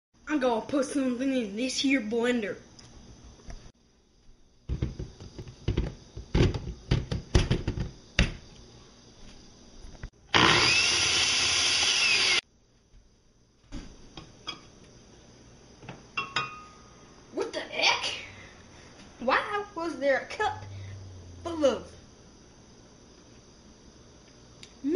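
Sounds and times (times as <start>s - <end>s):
blender motor running: 10.3s - 12.4s.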